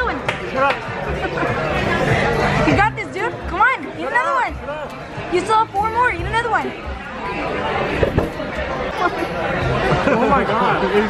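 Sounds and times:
restaurant chatter: 0.0 - 11.0.

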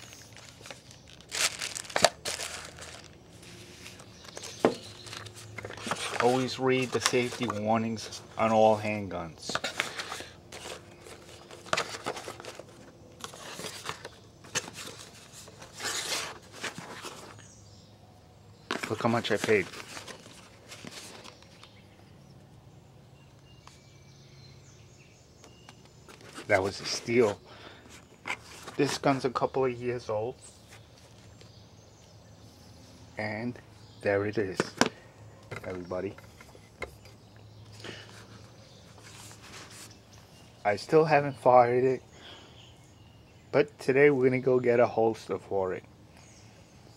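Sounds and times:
cardboard box rustling: 0.0 - 8.4, 9.5 - 17.5, 18.7 - 21.6, 26.1 - 29.2
faint rustle: 37.7 - 40.4.

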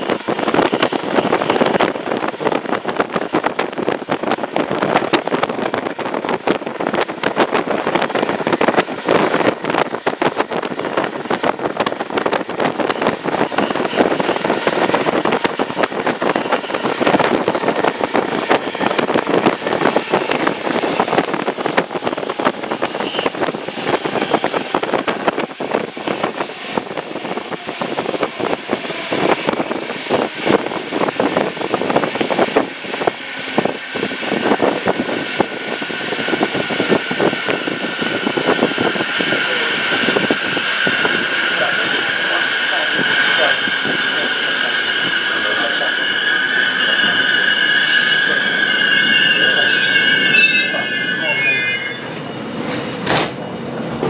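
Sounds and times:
high brake squeal: 22.9 - 23.4, 40.3 - 53.8.

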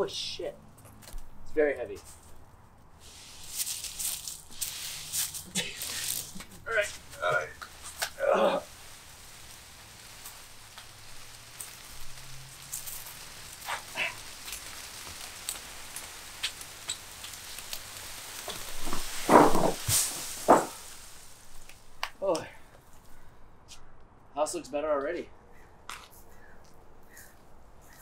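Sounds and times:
branches scraping and crackling: 0.7 - 23.8.

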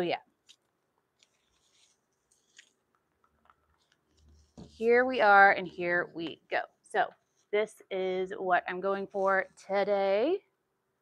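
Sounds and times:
faint scratchy handling noises: 0.3 - 7.7.

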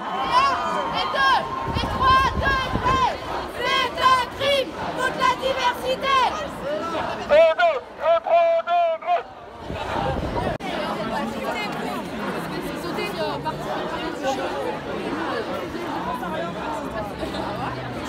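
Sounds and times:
young people shouting: 0.0 - 7.6
crowd chattering: 0.0 - 18.0.

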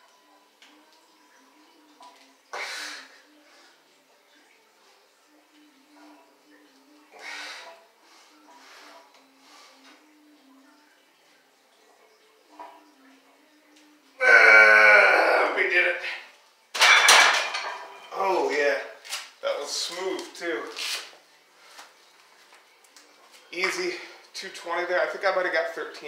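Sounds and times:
straining yell: 14.2 - 15.6.

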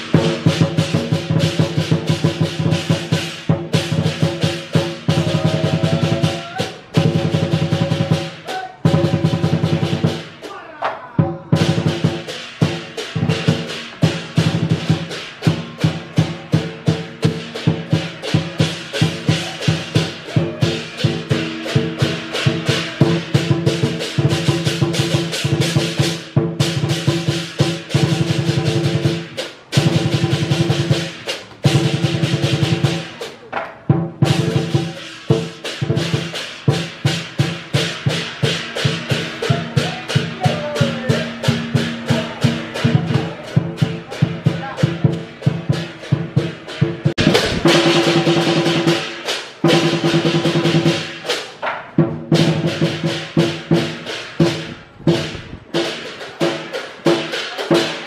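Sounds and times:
clashing cymbals: 0.0 - 10.6, 11.5 - 58.0
driving drum beat: 0.0 - 58.0
gong ringing: 38.8 - 44.0.

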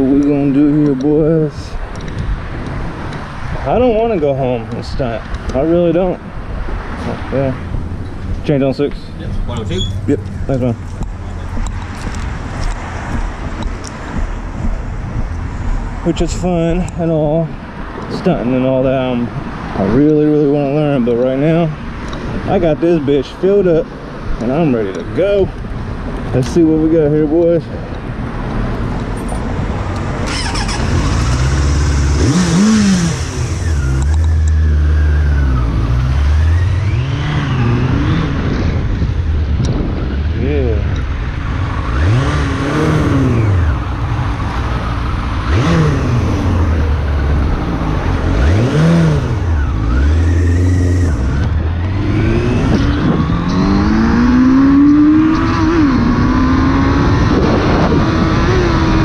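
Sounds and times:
motorcycle engine accelerating: 30.0 - 59.0.

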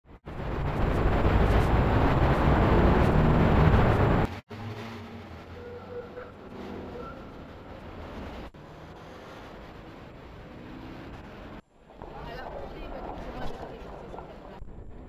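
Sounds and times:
street traffic engine drone: 0.0 - 15.0
quiet street hum: 0.1 - 15.0.

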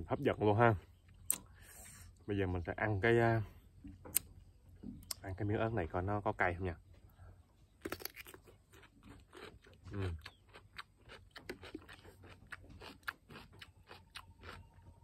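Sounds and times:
crunchy chewing: 7.7 - 15.0
biting into cucumber crunch: 7.8 - 15.0.

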